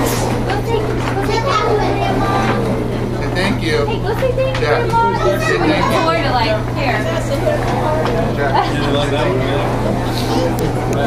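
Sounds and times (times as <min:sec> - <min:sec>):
chatter of adults and children: 0:00.0 - 0:11.0
steady low hum: 0:00.0 - 0:11.0.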